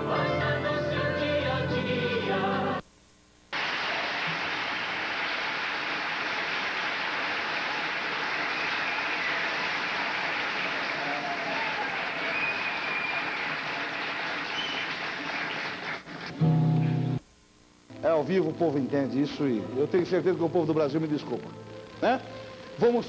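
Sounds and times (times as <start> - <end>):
audience applauding: 3.6 - 16.4
faint whistles: 8.4 - 9.6, 12.2 - 13.5, 14.4 - 15.1.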